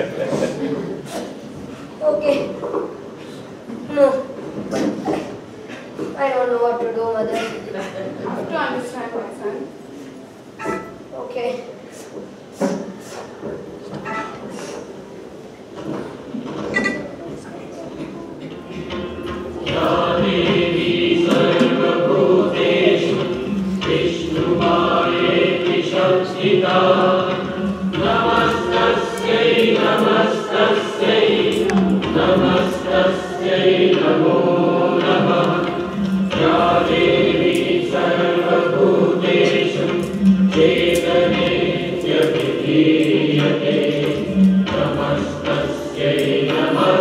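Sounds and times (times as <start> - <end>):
voices singing over music: 18.9 - 47.0.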